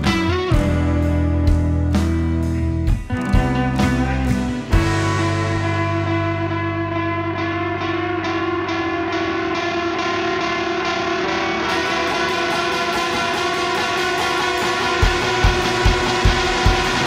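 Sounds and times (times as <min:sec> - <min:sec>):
indie rock guitar chords: 0:00.0 - 0:17.0
low steady thumping beat: 0:12.2 - 0:17.0.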